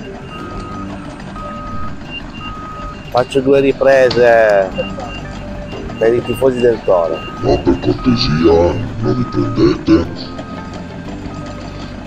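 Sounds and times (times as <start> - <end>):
truck engine running: 0.0 - 12.0
truck reversing alarm beeping: 0.0 - 12.0.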